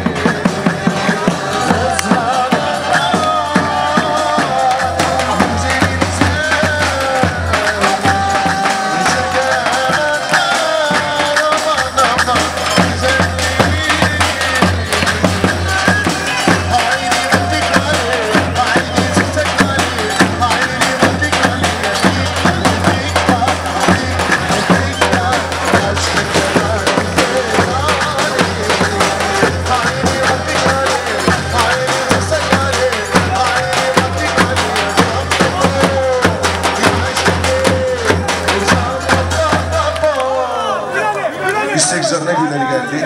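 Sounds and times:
bass drum steady driving rhythm: 0:00.0 - 0:40.2.

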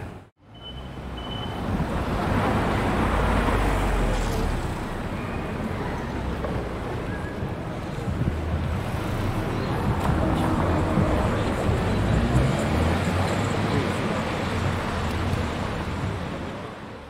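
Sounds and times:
wind buffeting microphone: 0:06.1 - 0:12.5.

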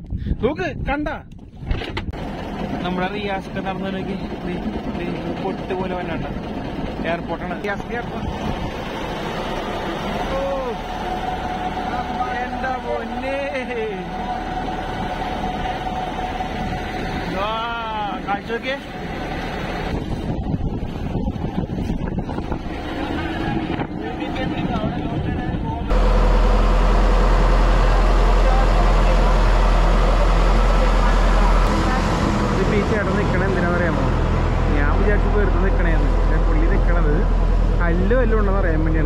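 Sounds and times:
motorboat engine running: 0:01.9 - 0:39.0
people talking: 0:02.8 - 0:06.4, 0:07.0 - 0:08.3, 0:10.3 - 0:10.8, 0:11.8 - 0:14.2, 0:17.3 - 0:18.9, 0:23.0 - 0:25.9, 0:27.8 - 0:39.0.

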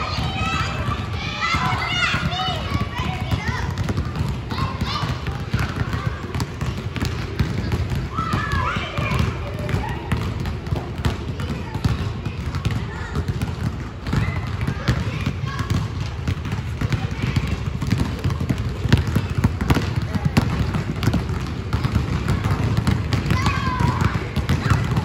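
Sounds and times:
children calling out: 0:00.0 - 0:06.4, 0:08.1 - 0:10.2, 0:23.2 - 0:25.0
basketballs bouncing on hardwood: 0:00.0 - 0:25.0.

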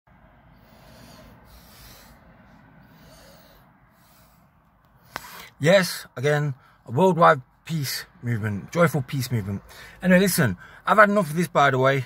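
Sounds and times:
low steady rumble: 0:00.1 - 0:12.0
faint breathing: 0:00.2 - 0:05.6, 0:09.6 - 0:10.0, 0:10.6 - 0:10.9.

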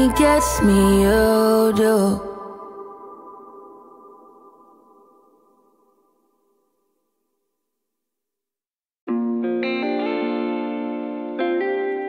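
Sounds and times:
sustained guitar chords: 0:00.0 - 0:05.7, 0:09.1 - 0:12.0.

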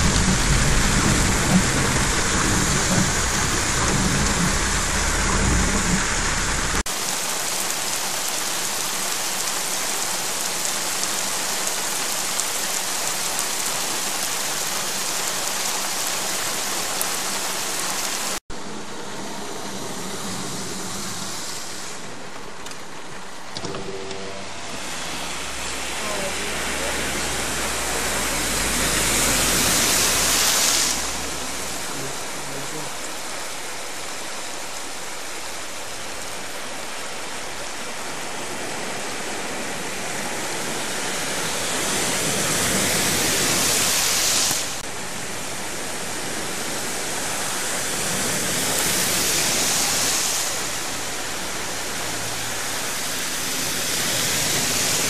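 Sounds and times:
car tyres swishing through water: 0:00.0 - 0:23.6, 0:24.4 - 0:55.0
heavy rain: 0:00.0 - 0:55.0
running flood water: 0:00.0 - 0:55.0.

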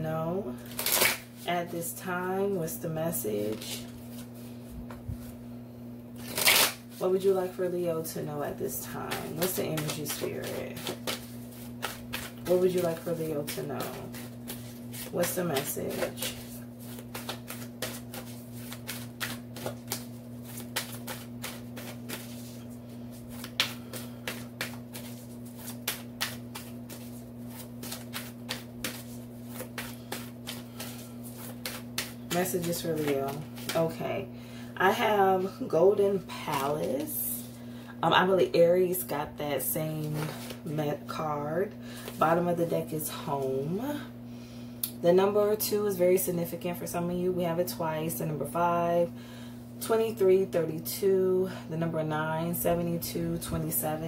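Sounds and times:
low steady hum: 0:00.0 - 0:54.0
cards shuffling swish: 0:06.2 - 0:07.0, 0:09.1 - 0:33.8.

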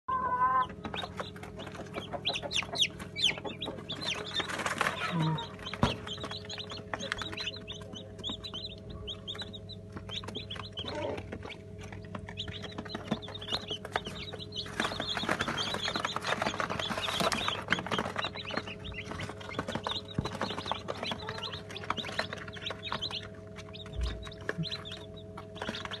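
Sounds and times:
chicks peeping: 0:00.1 - 0:26.0
steady low hum: 0:00.1 - 0:26.0.

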